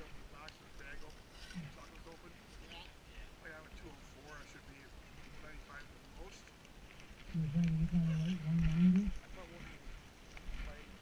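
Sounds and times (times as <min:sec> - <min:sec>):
people talking: 0:00.0 - 0:06.5, 0:07.4 - 0:09.8, 0:10.6 - 0:11.0.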